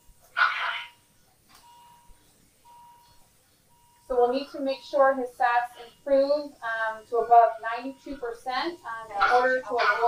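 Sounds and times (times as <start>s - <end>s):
patient monitor beeping: 0.0s - 10.0s.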